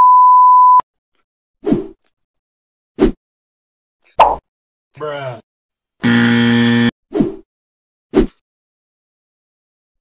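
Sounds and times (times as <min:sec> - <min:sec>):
loud steady buzzer tone: 0:06.0 - 0:06.9.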